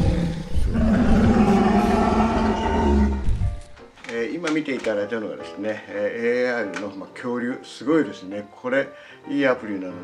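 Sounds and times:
deep dinosaur roar: 0.0s - 3.4s.

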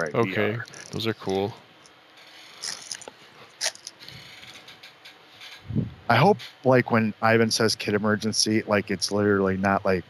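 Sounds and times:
sharp crackles: 2.2s - 5.6s
person humming: 6.1s - 9.9s.

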